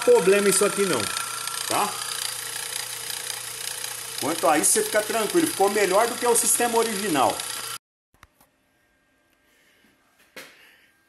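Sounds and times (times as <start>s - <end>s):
electric motor humming: 0.0s - 7.8s.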